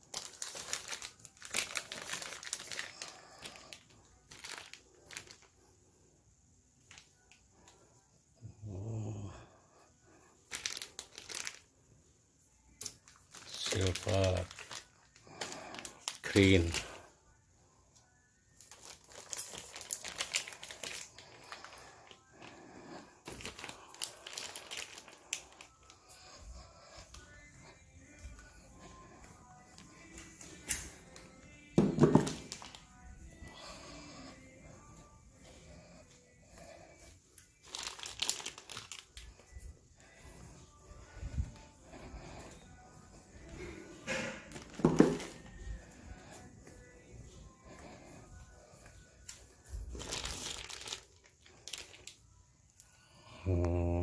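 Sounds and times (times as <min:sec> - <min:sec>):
plastic wrapping crinkling: 0:00.0 - 0:05.7, 0:10.4 - 0:11.7, 0:12.7 - 0:17.0, 0:18.4 - 0:35.2, 0:37.0 - 0:53.1
faint background music: 0:00.0 - 0:54.0.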